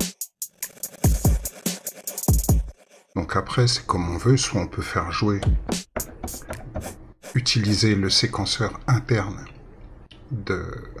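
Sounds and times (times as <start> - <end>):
electronic drum beat: 0.0 - 2.8, 5.4 - 7.0.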